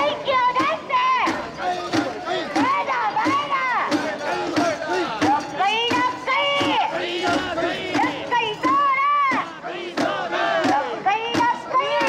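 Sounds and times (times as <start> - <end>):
crowd shouting a chant: 0.0 - 12.0.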